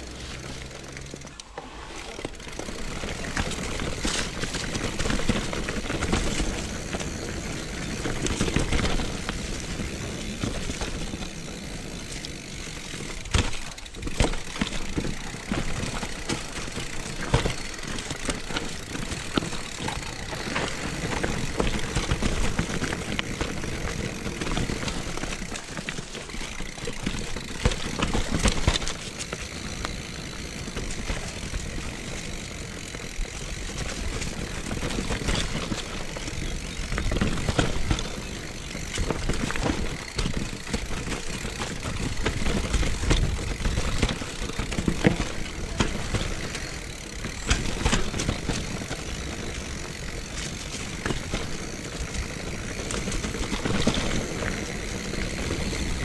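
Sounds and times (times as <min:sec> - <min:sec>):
bike rattling and knocking: 0:00.0 - 0:56.0
tyres crunching over leaves and stones: 0:00.0 - 0:56.0.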